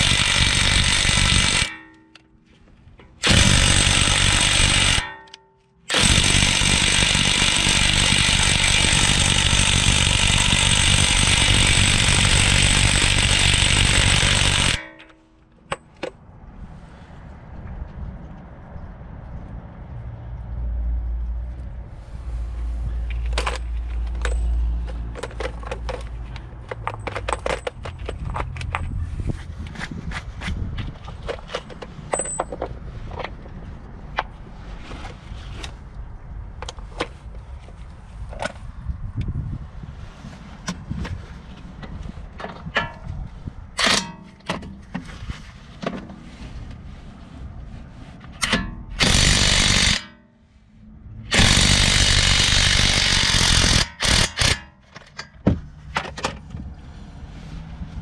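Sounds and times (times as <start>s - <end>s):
impact wrench hammering: 0.0s - 2.3s, 3.2s - 15.9s, 43.8s - 44.5s, 48.4s - 50.3s, 51.3s - 55.6s.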